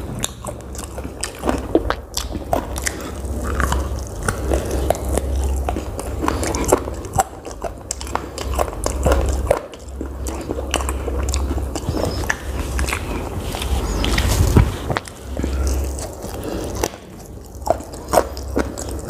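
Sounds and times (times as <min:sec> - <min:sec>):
close chewing and biting: 0:00.0 - 0:19.0.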